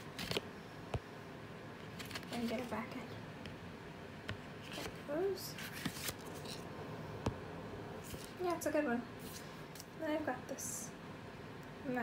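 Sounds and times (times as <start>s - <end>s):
cardboard packaging rustling: 1.8s - 2.8s, 4.6s - 6.7s.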